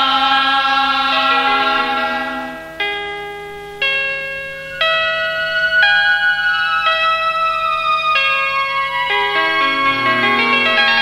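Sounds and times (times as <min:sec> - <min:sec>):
bell-like keyboard notes: 0:00.8 - 0:11.0.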